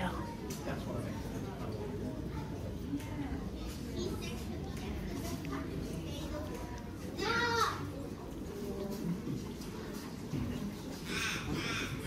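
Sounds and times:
bird harsh calls: 0:11.0 - 0:12.0.

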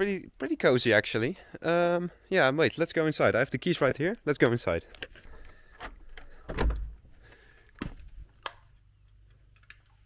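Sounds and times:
key working a door lock: 0:05.0 - 0:07.0
door opening thump: 0:06.5 - 0:07.0, 0:07.8 - 0:08.1.

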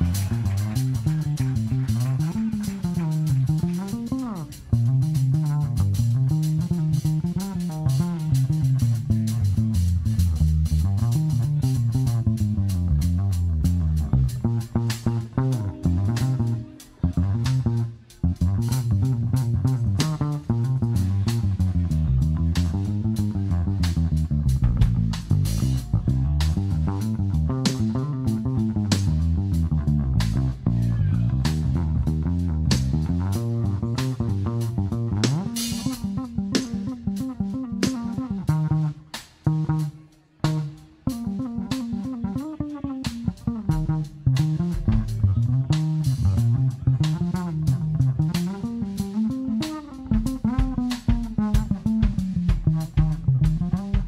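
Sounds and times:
electric bass guitar solo: 0:00.0 - 0:54.0.

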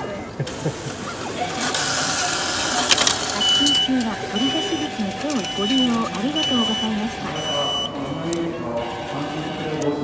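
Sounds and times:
vending machine whirring: 0:00.0 - 0:10.0.

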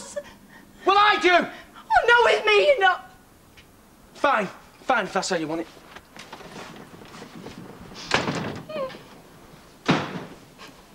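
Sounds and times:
door slamming shut: 0:08.0 - 0:09.1, 0:09.8 - 0:10.4.

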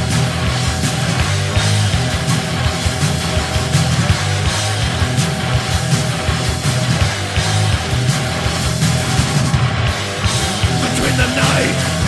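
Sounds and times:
distorted guitar and bass: 0:00.0 - 0:12.0
steady drum beat: 0:10.4 - 0:12.0.

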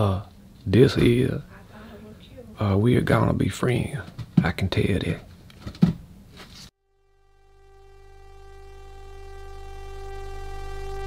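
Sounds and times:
synthesizer chord with bass: 0:06.8 - 0:11.0.

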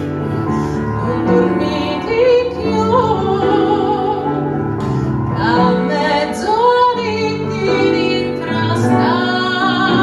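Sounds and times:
soprano singing: 0:00.0 - 0:10.0
upright piano: 0:00.0 - 0:10.0.

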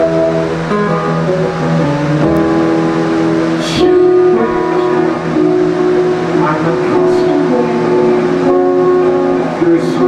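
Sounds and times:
electric guitar ringing notes: 0:00.0 - 0:10.0.

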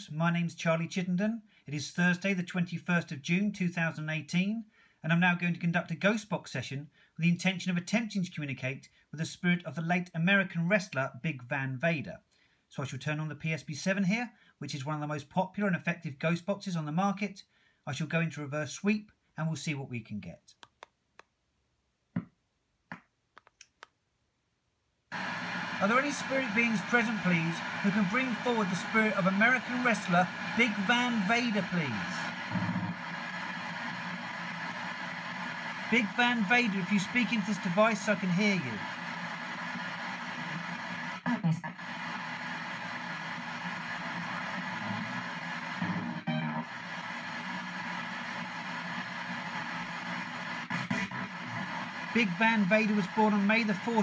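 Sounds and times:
snatches of broadcast sound: 0:22.9 - 0:24.0, 0:25.1 - 0:54.0
radio static hiss: 0:25.1 - 0:54.0.

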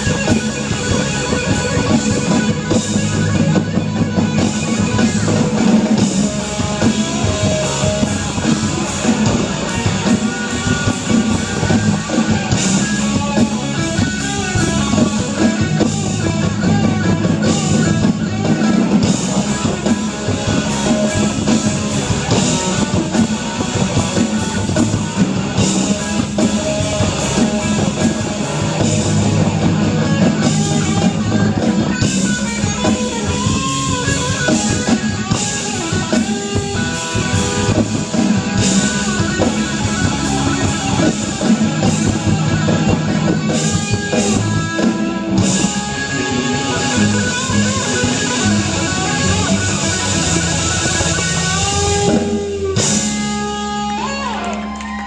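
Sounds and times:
live rock band playing: 0:00.0 - 0:55.0.

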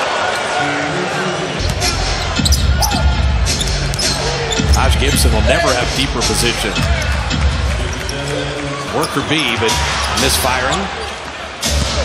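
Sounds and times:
crowd noise: 0:00.0 - 0:12.0.

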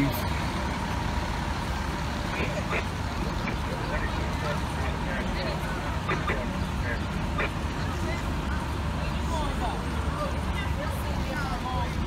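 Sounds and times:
faint voices: 0:00.0 - 0:12.0
vehicle engines idling: 0:00.0 - 0:12.0.

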